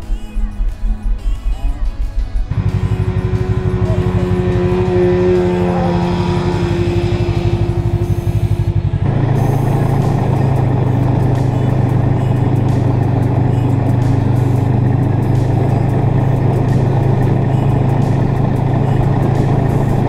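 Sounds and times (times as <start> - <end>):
snowmobile engine running: 2.1 - 20.0.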